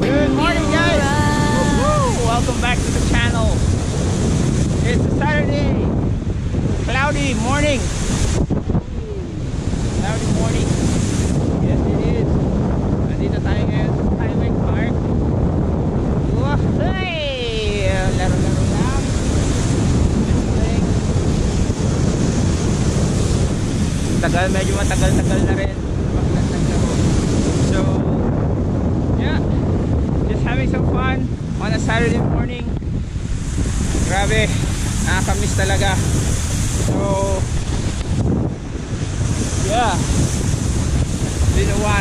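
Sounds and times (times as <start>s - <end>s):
water rushing under board: 0.0s - 12.2s, 33.0s - 42.0s
wind buffeting microphone: 0.0s - 42.0s.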